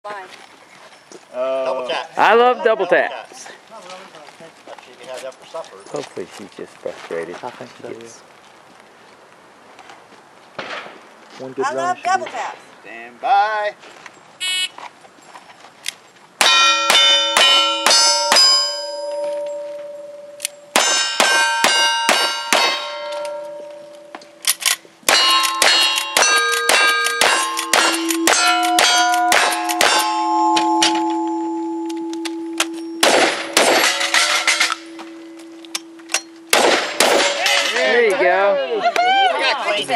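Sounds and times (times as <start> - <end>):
steel targets ringing: 16.4 - 24.4, 25.1 - 38.0
gunshots: 25.1 - 30.0, 33.0 - 34.8, 36.5 - 37.8.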